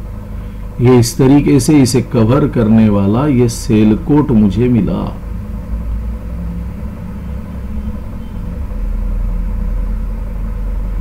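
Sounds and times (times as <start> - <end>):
faint hum: 0.0 - 11.0
steady low rumble: 0.0 - 11.0.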